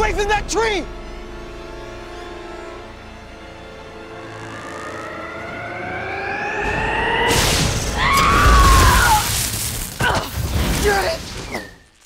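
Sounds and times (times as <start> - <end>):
rising multi-pitch riser tone: 2.5 - 8.1.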